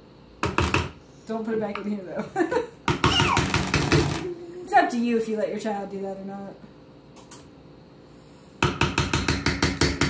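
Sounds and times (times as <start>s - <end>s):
sharp knocks: 0.4s - 1.0s, 2.9s - 4.2s.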